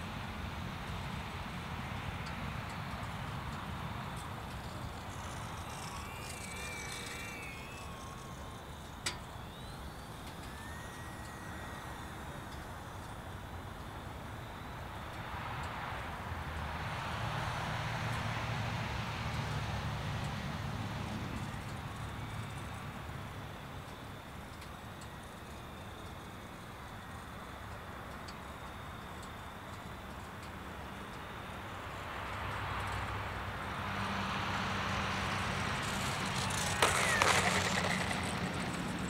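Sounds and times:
model plane motor whine: 0.9 - 14.8, 19.3 - 27.2, 34.0 - 39.0.

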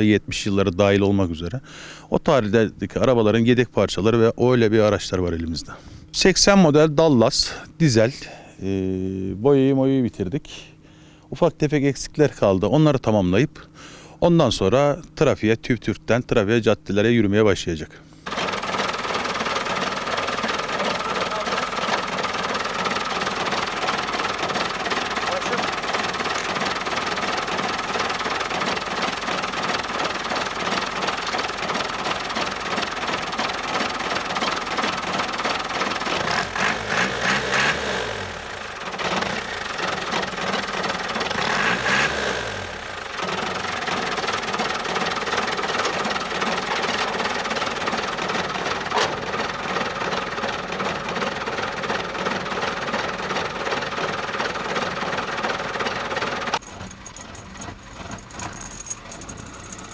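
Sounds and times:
diesel engine idling and revving: 18.2 - 59.9.

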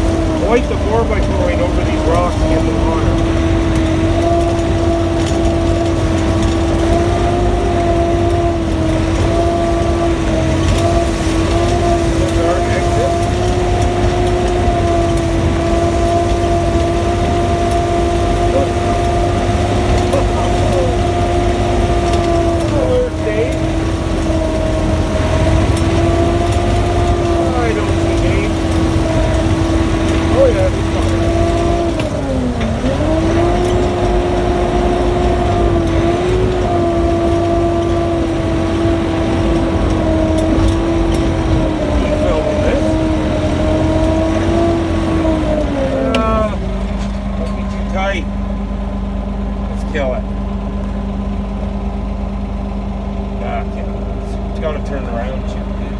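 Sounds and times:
engine and drivetrain whine: 0.0 - 55.9.

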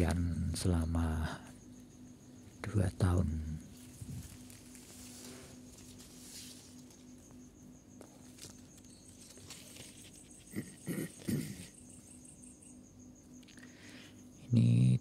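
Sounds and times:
insects trilling: 0.0 - 15.0
low steady hum: 0.0 - 15.0.

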